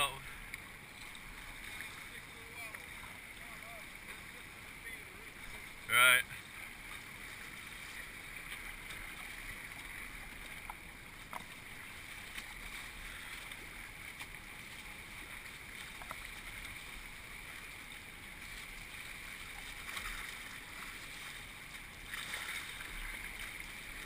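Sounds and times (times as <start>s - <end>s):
river water rushing and splashing: 0.0s - 24.0s.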